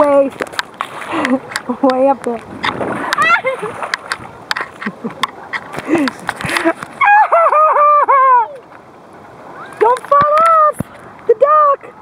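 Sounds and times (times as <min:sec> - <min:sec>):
high-pitched laughter: 0:03.2 - 0:03.8, 0:04.6 - 0:08.6.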